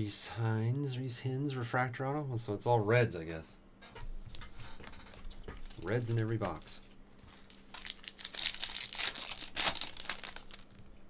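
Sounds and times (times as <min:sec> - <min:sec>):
card pack wrapper crinkling: 0:04.3 - 0:11.0.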